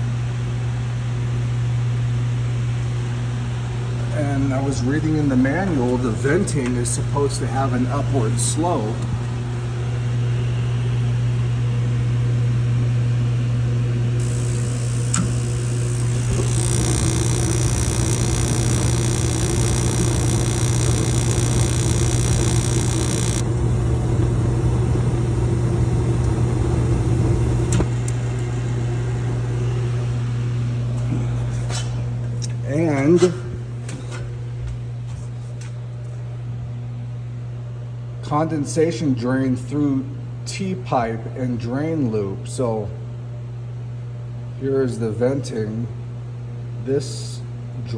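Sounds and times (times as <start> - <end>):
heater blower humming: 13.9 - 31.4
gas burners rushing: 14.2 - 28.5.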